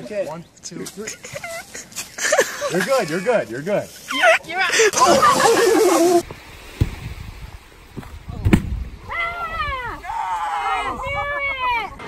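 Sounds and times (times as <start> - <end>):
heavy thud in sand: 8.0 - 8.8.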